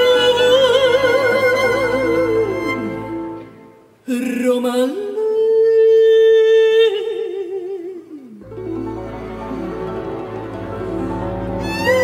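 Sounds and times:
woman singing opera: 0.0 - 8.6, 11.6 - 12.0.

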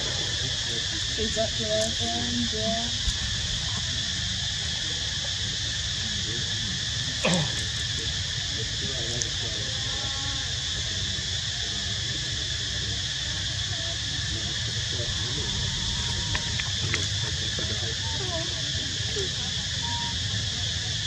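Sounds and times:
faint distant voices: 0.0 - 21.0
insects droning: 0.0 - 21.0
low outdoor hum: 0.0 - 21.0.

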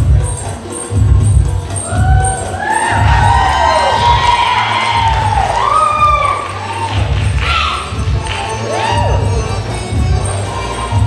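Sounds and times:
belly dance music with drum beat: 0.0 - 11.0
audience cheering and whooping: 1.8 - 9.6.

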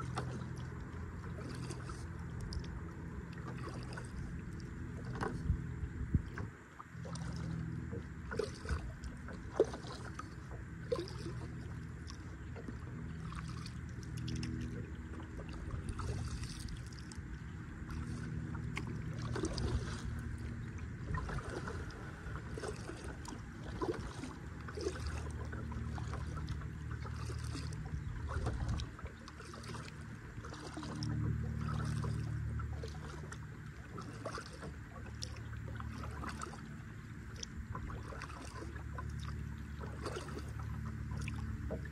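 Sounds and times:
low rumble: 0.0 - 41.9
water dripping and lapping: 0.0 - 41.9
water plop: 17.9 - 20.1.

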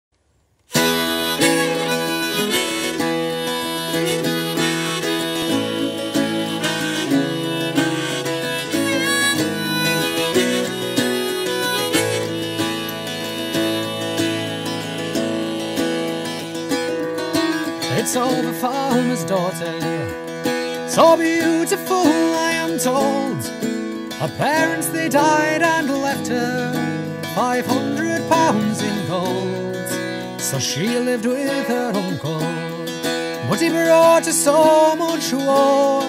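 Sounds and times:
harmonica folk melody: 0.7 - 36.0
strummed bouzouki: 0.7 - 36.0.

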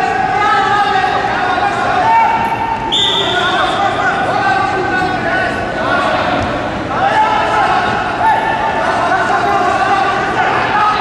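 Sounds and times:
shrill whistle blown: 2.9 - 3.9.

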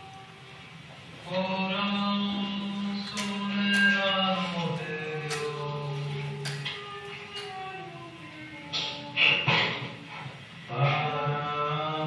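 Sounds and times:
recorded voice chanting long notes: 1.2 - 9.5, 10.6 - 12.0.

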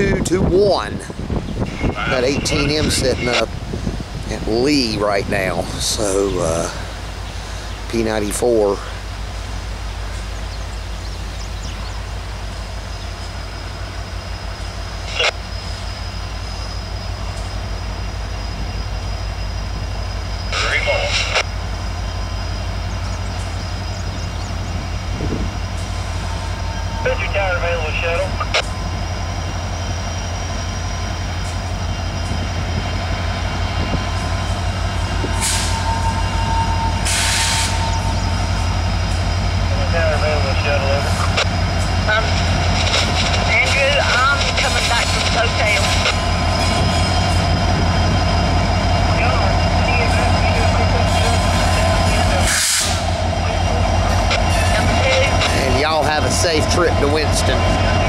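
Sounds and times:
diesel locomotive engine rumble: 0.0 - 58.0.

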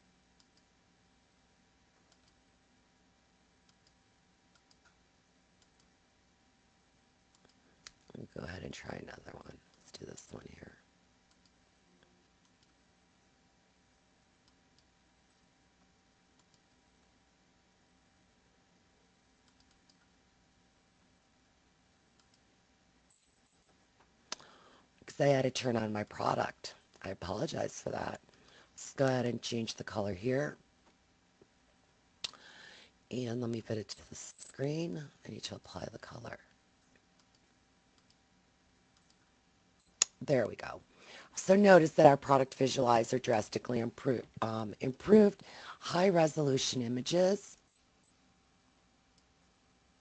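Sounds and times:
faint room hum: 0.0 - 50.0
computer mouse clicks: 0.4 - 0.7, 2.0 - 2.4, 3.6 - 5.0, 5.6 - 6.0, 7.3 - 8.0, 11.3 - 11.6, 16.3 - 16.8, 19.4 - 20.2, 22.2 - 22.5, 37.0 - 38.2, 38.9 - 39.2.

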